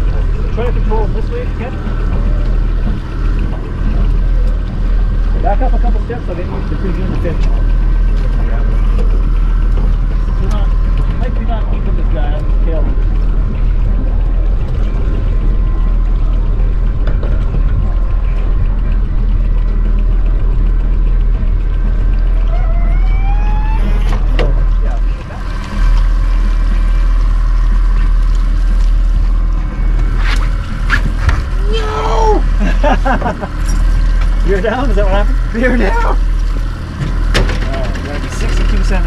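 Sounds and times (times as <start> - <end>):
boat engine droning: 0.0 - 39.0.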